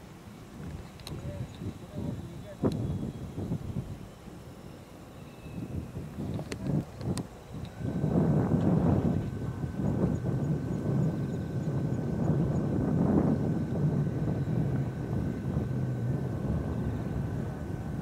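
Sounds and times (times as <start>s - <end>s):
jet engines rumbling: 0.0s - 18.0s
wind on microphone: 0.5s - 4.1s, 5.4s - 18.0s.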